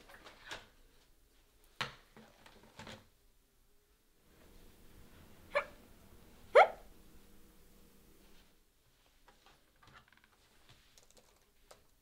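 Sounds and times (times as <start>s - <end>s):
dog-like yips: 5.5s - 5.8s, 6.5s - 6.8s.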